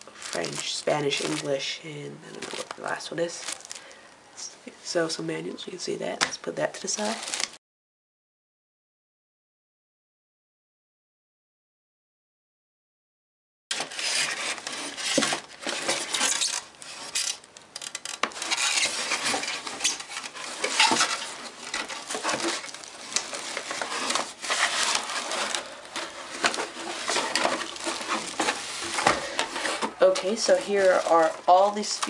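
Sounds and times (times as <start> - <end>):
plastic wrapping crinkling: 0.0 - 1.7, 2.3 - 4.0, 6.6 - 7.6, 13.7 - 32.0
cardboard and styrofoam scraping: 7.0 - 7.6, 13.7 - 32.0.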